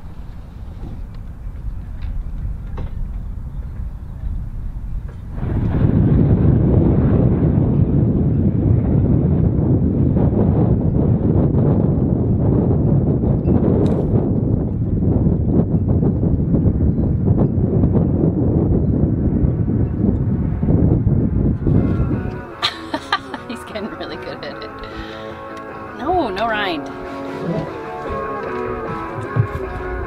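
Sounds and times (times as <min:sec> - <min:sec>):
aircraft rotors droning overhead: 0:00.0 - 0:13.4, 0:14.1 - 0:30.0.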